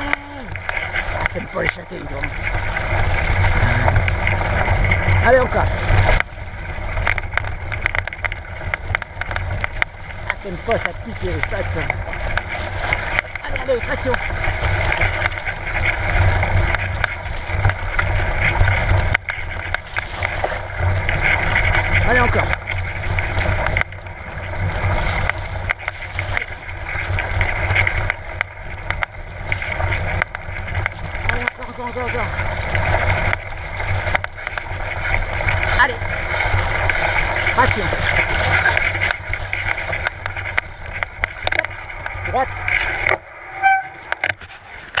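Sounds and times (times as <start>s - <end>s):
bike rolling and rattling on trail: 0.0s - 45.0s
high squeal: 3.1s - 3.5s, 43.2s - 44.2s.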